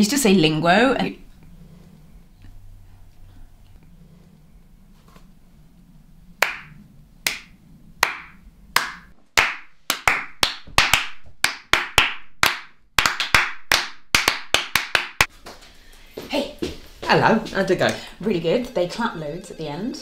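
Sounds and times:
hand clapping: 6.4 - 15.6.

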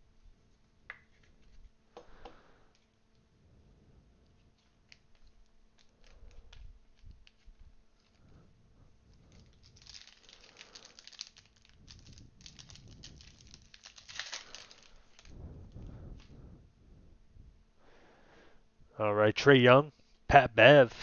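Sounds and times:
cards being handled: 4.3 - 8.2, 9.1 - 15.4
wrapper tearing and crinkling: 9.1 - 16.3.

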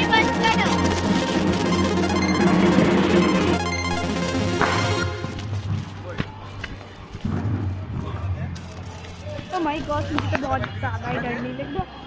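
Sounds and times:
people talking: 0.0 - 3.4, 7.9 - 12.0.

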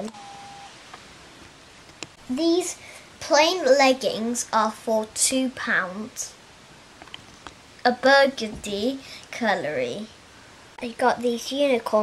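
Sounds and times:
faint steady tone: 0.0 - 0.9.

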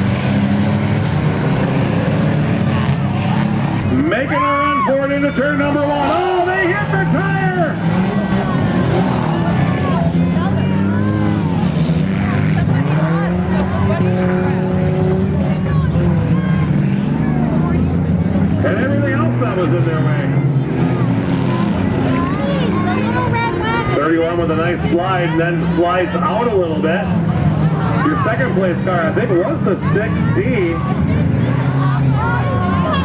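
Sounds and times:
car engines droning: 0.0 - 33.0
people talking: 3.8 - 20.4, 21.3 - 33.0.

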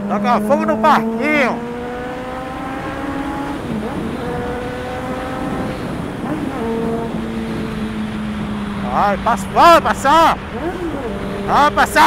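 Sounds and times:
motorcycle engine accelerating: 0.0 - 12.0
road noise: 0.0 - 12.0
wind noise: 1.0 - 12.0.

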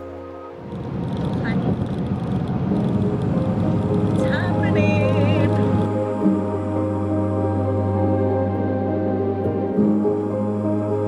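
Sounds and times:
car cabin road noise: 0.0 - 8.3
background music: 0.0 - 11.0.

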